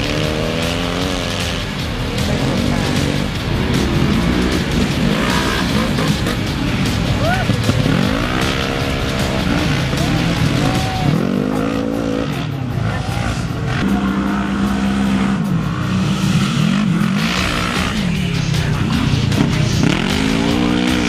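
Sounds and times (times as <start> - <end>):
race engines revving: 0.0 - 21.0.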